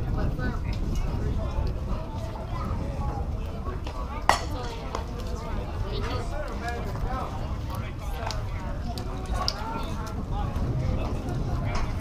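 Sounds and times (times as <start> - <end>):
indistinct voices chattering: 0.0 - 12.0.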